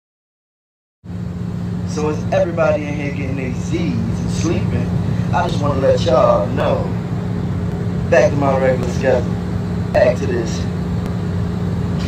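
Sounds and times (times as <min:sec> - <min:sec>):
aircraft cabin drone: 0:01.1 - 0:12.0.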